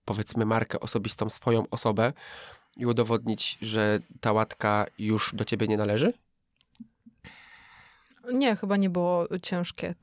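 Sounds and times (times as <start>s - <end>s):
soft in-breath: 2.2s - 2.7s, 7.2s - 8.2s.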